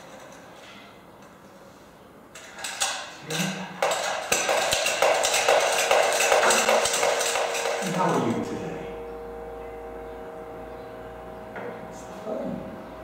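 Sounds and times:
spinning top humming: 3.8 - 13.0.

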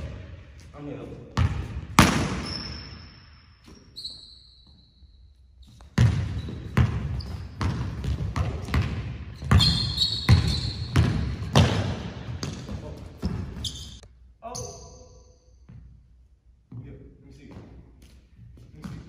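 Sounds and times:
basketball bouncing on wooden floor: 1.3 - 2.8, 5.7 - 14.0
sneaker squeaks: 1.4 - 16.0.

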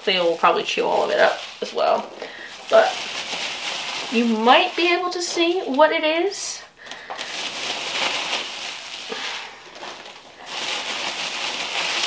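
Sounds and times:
packing peanuts rustling: 0.0 - 12.0.

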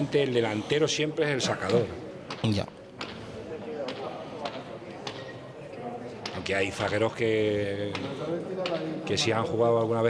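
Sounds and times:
murmur of spectators: 0.0 - 10.0.

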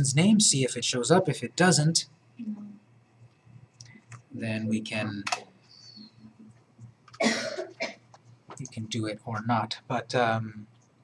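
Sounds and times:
man coughing: 7.2 - 8.0.

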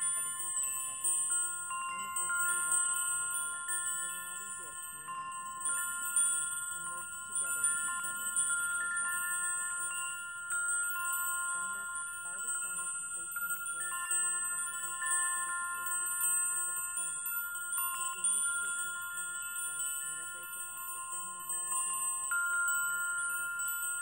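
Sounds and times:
metal chimes ringing: 0.0 - 24.0.

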